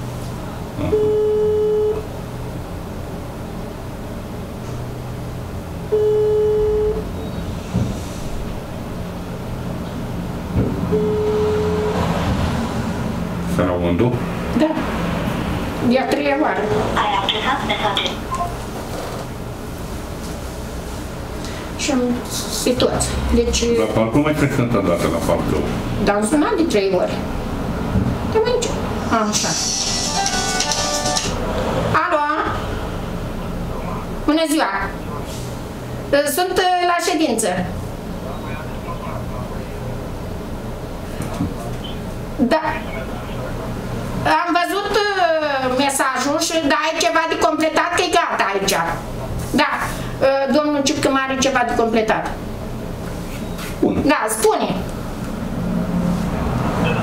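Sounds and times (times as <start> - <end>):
phone ringback beeps: 0.9 - 2.0, 5.9 - 7.0, 10.9 - 12.1
music from phone speaker: 29.6 - 31.4.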